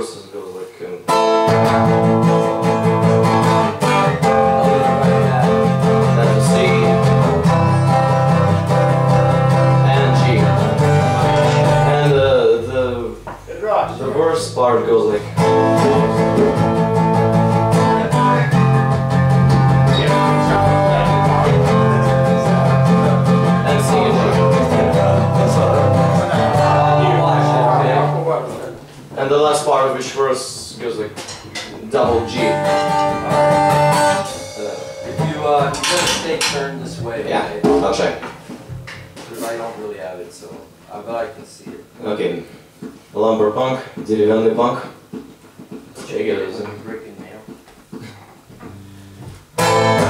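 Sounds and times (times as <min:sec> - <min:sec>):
acoustic guitars strumming: 0:01.0 - 0:40.8, 0:48.5 - 0:50.0
guitar sliding bending notes: 0:01.1 - 0:13.2, 0:13.8 - 0:29.2, 0:31.5 - 0:37.7, 0:48.6 - 0:50.0.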